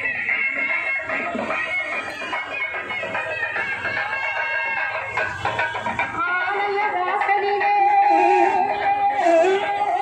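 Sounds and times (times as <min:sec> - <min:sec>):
reed wind instruments playing: 0:08.0 - 0:10.0.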